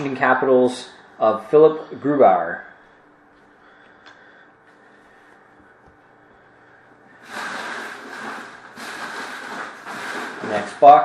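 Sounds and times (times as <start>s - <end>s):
card packaging rustling and crinkling: 7.2s - 10.8s.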